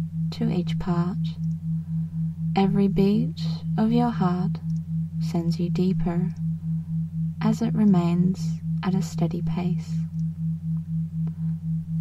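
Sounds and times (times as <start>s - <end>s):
pulsing electronic sine tone: 0.0s - 12.0s
steady low drone: 0.0s - 12.0s.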